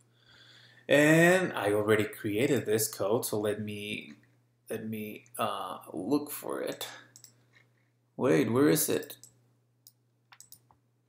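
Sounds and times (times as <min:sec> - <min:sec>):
computer mouse clicks: 0:07.2 - 0:07.7, 0:09.0 - 0:10.8.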